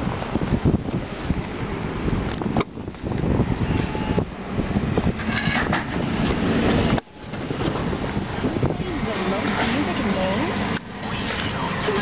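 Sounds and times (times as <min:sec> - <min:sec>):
wind buffeting microphone: 0:00.0 - 0:11.8.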